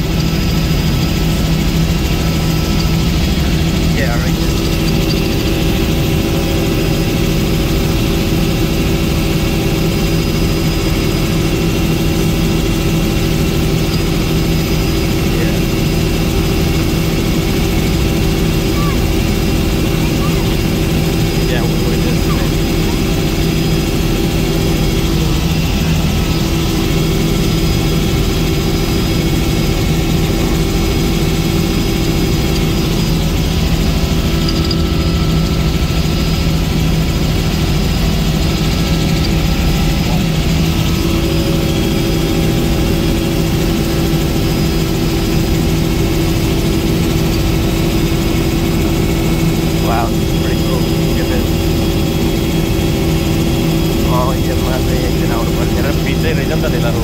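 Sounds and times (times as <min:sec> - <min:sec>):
helicopter cabin drone: 0:00.0 - 0:57.0.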